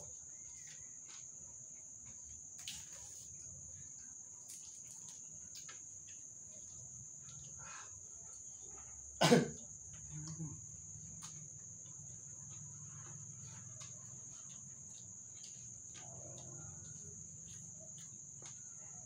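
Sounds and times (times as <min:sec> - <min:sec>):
crickets chirring: 0:00.0 - 0:19.0
crickets eating clicks and rustles: 0:00.0 - 0:19.0
person coughing: 0:09.2 - 0:09.6.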